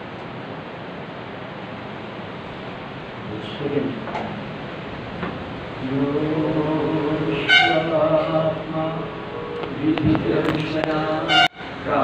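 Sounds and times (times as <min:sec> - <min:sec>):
man chanting: 0:05.8 - 0:12.0.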